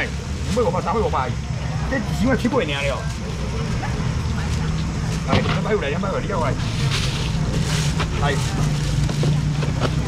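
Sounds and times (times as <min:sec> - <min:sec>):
chatter of voices: 0:00.0 - 0:10.0.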